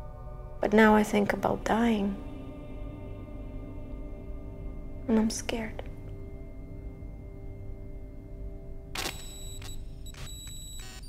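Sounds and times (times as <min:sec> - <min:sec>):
high-pitched electronic beeping: 0:09.0 - 0:11.0.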